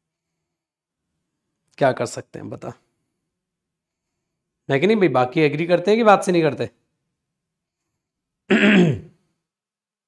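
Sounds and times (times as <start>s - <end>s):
man clearing his throat: 8.5s - 9.2s.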